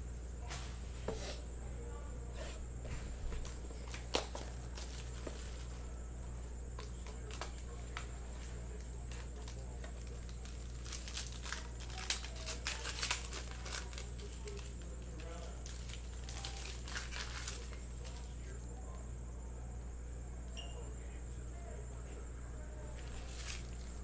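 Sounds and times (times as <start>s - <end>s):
faint indistinct voices: 0.0s - 24.0s
foil wrapper crinkling: 3.2s - 18.6s, 22.9s - 24.0s.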